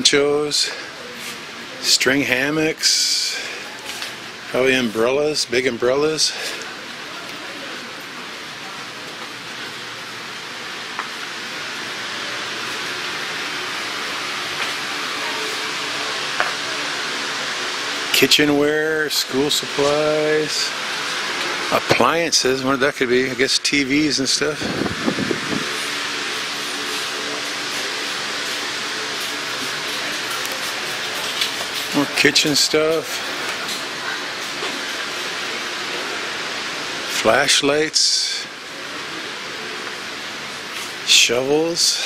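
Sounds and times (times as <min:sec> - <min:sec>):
indoor store background hiss: 0:00.0 - 0:42.0.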